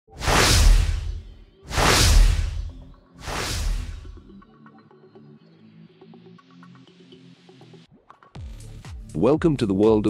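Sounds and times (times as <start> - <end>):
cinematic whoosh with deep rumble: 0.2 - 4.2.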